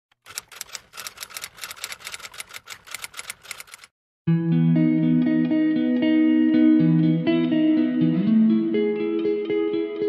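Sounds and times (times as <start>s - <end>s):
typewriter key clicks: 0.2s - 3.9s.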